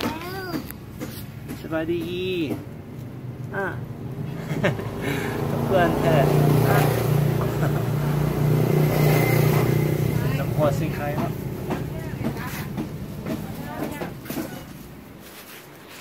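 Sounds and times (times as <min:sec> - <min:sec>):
voices: 0:00.0 - 0:02.7, 0:09.5 - 0:15.2
vehicle engine running: 0:00.3 - 0:15.2.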